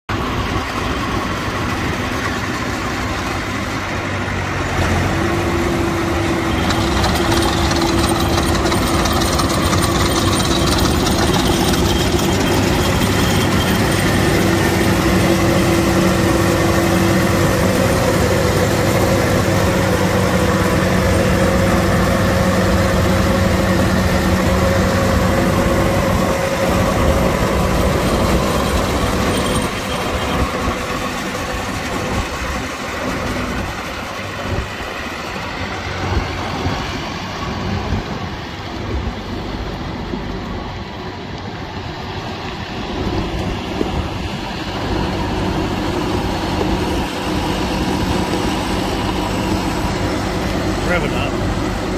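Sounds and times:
diesel engine idling: 0:00.1 - 0:51.9.

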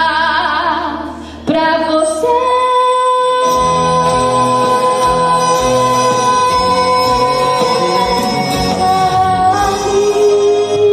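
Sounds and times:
woman singing gospel: 0:00.0 - 0:10.9
bass line: 0:01.6 - 0:10.9
instrumental backing: 0:02.2 - 0:10.9.

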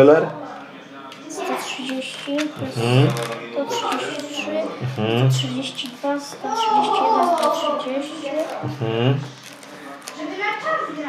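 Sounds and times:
people talking: 0:00.0 - 0:11.0
plastic binder sleeves rustling: 0:09.3 - 0:10.6.

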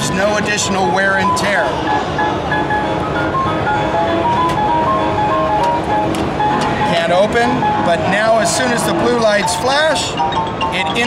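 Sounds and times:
steady background noise: 0:00.0 - 0:11.0
electronic jingle melody: 0:01.0 - 0:11.0.

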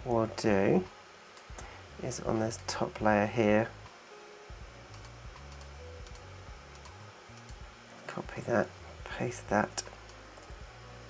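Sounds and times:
low room hum: 0:00.0 - 0:11.0
computer mouse clicks: 0:04.9 - 0:07.6.

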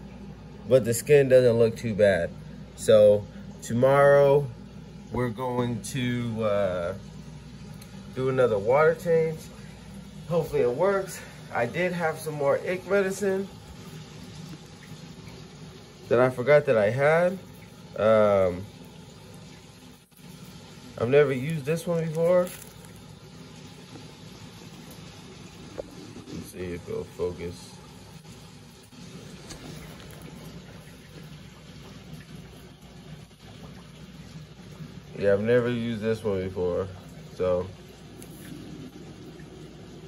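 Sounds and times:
aquarium water running: 0:00.0 - 0:40.0.

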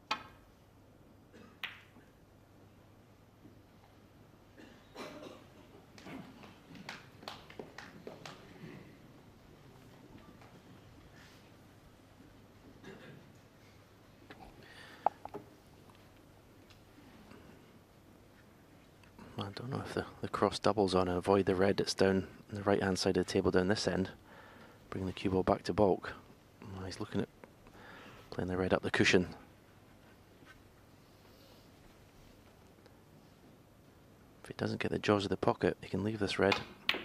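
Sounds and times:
snooker balls clicking: 0:01.6 - 0:02.1, 0:14.3 - 0:16.8, 0:36.5 - 0:37.0.

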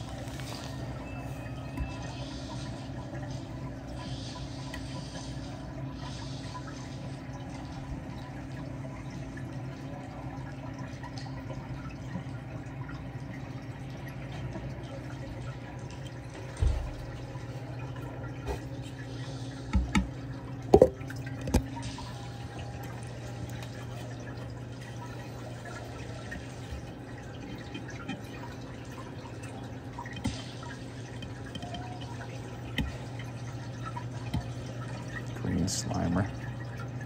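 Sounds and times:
water dripping and trickling: 0:00.0 - 0:37.0.

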